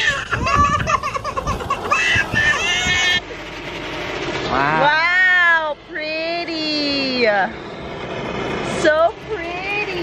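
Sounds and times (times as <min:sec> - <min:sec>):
toddler crying: 0:00.0 - 0:03.2.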